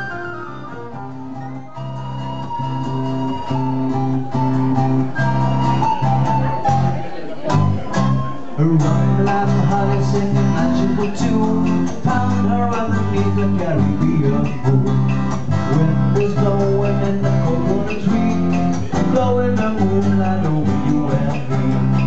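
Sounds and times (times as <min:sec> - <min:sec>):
low bass notes: 0:00.0 - 0:22.0
plucked acoustic guitar: 0:00.0 - 0:22.0.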